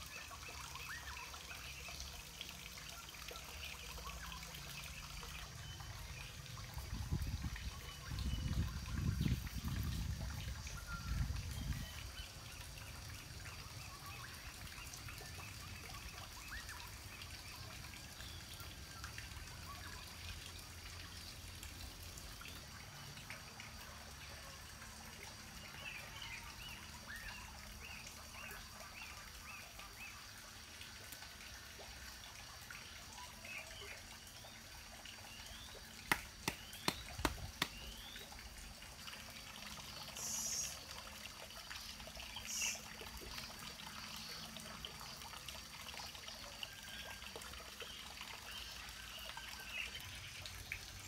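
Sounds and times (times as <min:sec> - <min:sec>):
water dribbling: 0:00.0 - 0:51.0.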